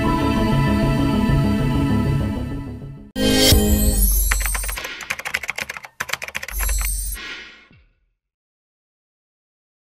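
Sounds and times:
keyboard typing clicks: 4.1 - 7.2.

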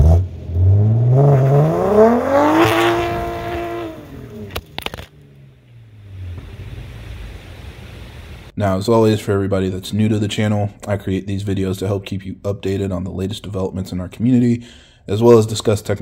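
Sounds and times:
car exhaust accelerating: 0.0 - 8.5
sharp exhaust cracks: 2.4 - 8.5
faint low rumble: 4.0 - 8.6.

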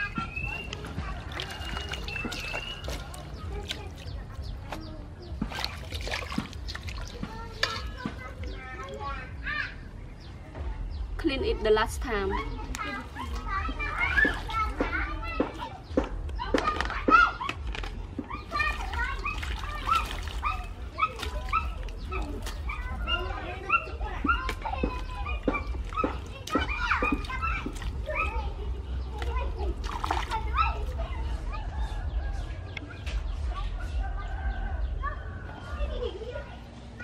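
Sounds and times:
hands splashing water in bowl: 0.0 - 8.9, 12.7 - 15.8, 16.5 - 31.0.

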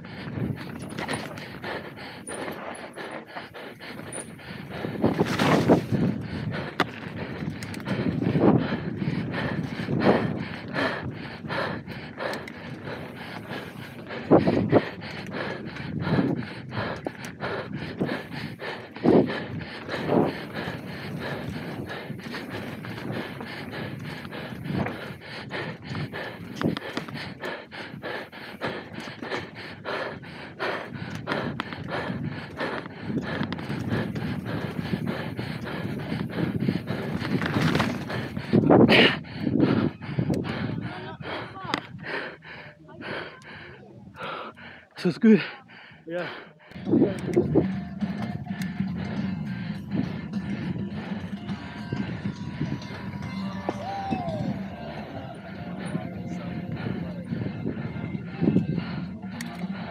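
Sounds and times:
rider breathing hard: 0.0 - 59.9
mountain bike rattling on dirt trail: 0.1 - 10.9, 17.0 - 27.3, 32.2 - 39.1.

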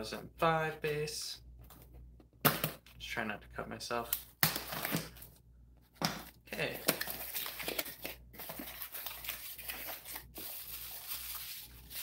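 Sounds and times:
packing material rustling: 6.6 - 12.0.

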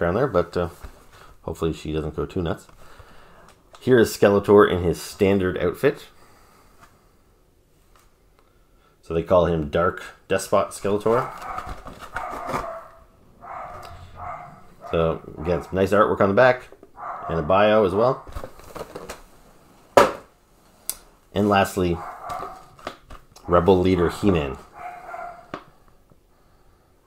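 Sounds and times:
muffled dog barking: 11.0 - 16.2, 17.0 - 18.4, 21.8 - 22.8, 23.4 - 25.7.

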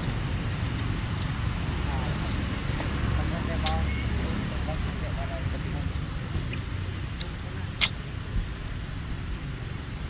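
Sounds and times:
low outdoor rumble: 0.0 - 10.0
sharp click: 6.5 - 8.0.

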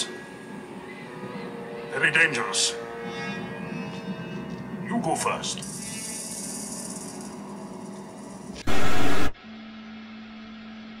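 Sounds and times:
hissy film soundtrack: 0.0 - 11.0.

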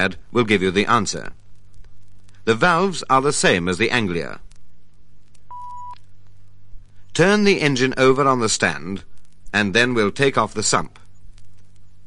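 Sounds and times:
faint low hum: 0.0 - 12.0
short steady beep: 5.5 - 6.0.

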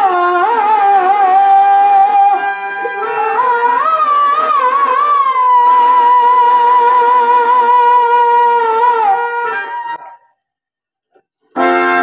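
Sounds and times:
man singing into microphone: 0.0 - 10.0.

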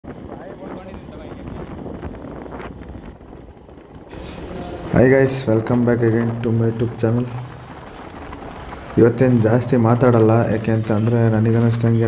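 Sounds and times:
motorcycle engine rumble: 0.1 - 12.0
wind on microphone: 0.1 - 12.0.

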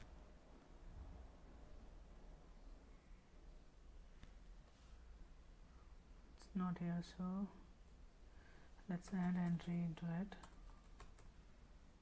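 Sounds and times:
faint keyboard keystrokes: 9.0 - 11.4.

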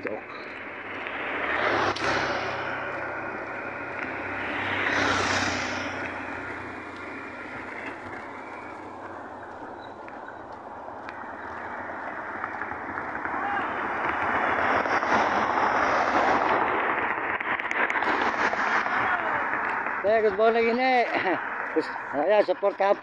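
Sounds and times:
rumble of tyres and engines: 0.0 - 23.0
vehicles passing by: 0.0 - 23.0.

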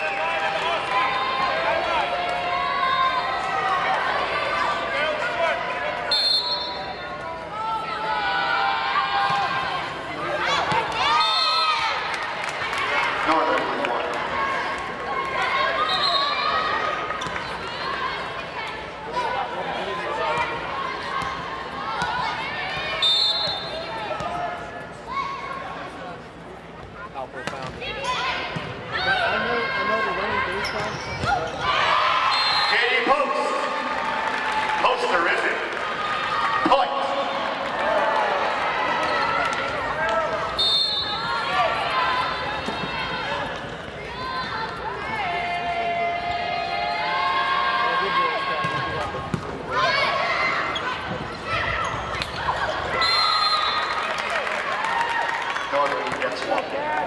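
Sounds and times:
people shouting and cheering: 28.1 - 57.0.

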